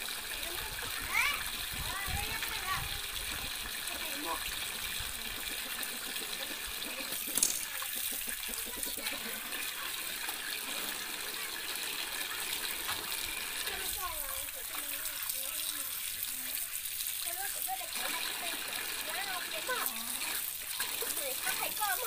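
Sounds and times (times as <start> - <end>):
hands rinsing meat splashing: 0.0 - 22.0
water pouring into metal basin: 0.0 - 22.0.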